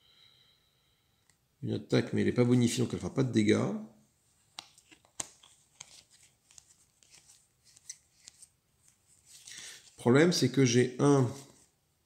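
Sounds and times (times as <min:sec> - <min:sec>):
playing cards sliding and flicking: 0:04.5 - 0:10.0.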